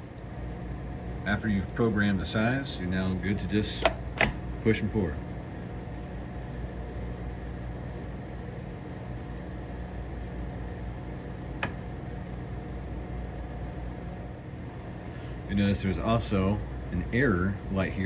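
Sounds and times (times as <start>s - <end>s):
beer dispenser humming: 0.0s - 18.0s.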